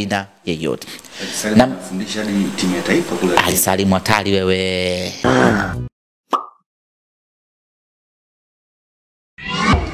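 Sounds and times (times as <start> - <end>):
cartoon pop sound effect: 6.3 - 6.6.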